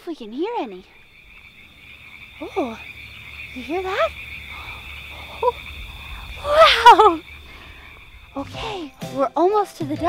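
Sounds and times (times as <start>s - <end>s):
frogs calling: 0.1s - 9.2s.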